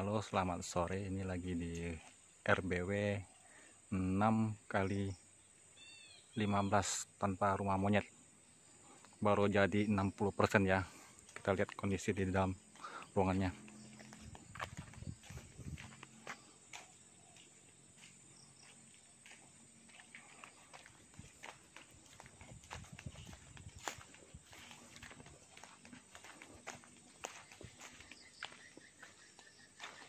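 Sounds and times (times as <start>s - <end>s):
footsteps on bare ground: 9.0s - 30.0s.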